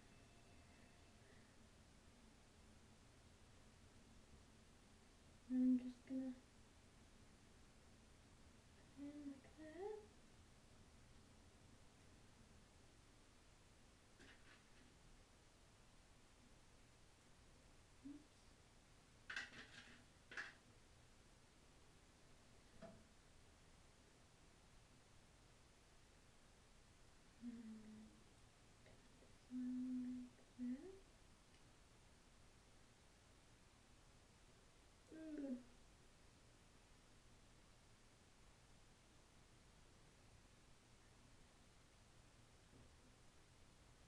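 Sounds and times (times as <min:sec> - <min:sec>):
person humming: 0:05.5 - 0:06.4, 0:08.8 - 0:10.1, 0:18.0 - 0:18.4, 0:27.4 - 0:28.2, 0:29.4 - 0:31.0, 0:35.1 - 0:35.7.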